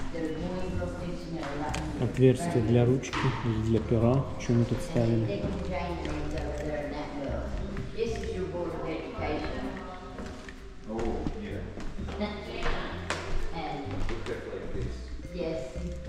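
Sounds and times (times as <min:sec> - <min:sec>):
people talking: 0:00.0 - 0:10.2, 0:10.9 - 0:15.8
music playing: 0:00.0 - 0:16.0.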